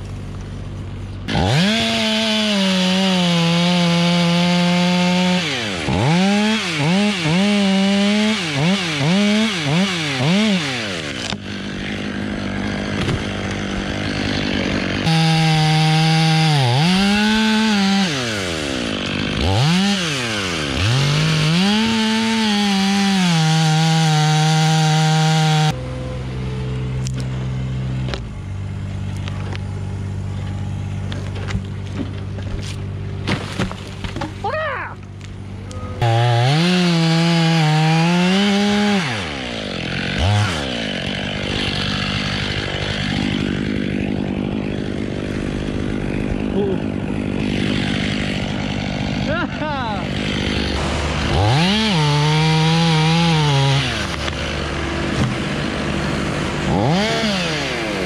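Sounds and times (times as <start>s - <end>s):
chainsaw cutting wood: 0.0s - 25.8s, 26.9s - 58.0s.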